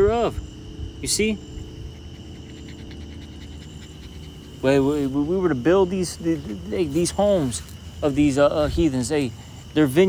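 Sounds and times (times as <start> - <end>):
insect chirping trill: 0.0 - 10.0.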